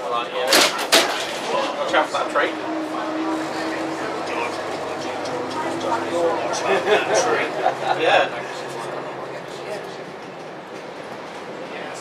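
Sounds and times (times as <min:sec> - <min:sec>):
bus engine humming: 0:00.5 - 0:12.0.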